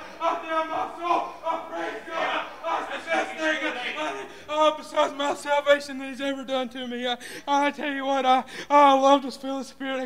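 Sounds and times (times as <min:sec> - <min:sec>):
man exclaiming excitedly: 0:00.2 - 0:06.4.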